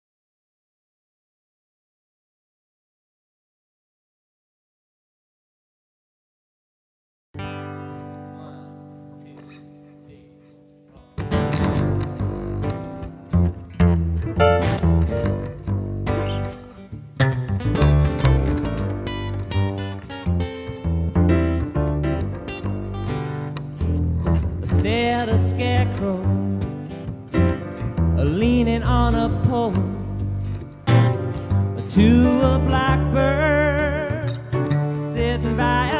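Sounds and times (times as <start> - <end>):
acoustic guitar playing: 7.4 - 35.9
plucked upright bass: 11.2 - 35.9.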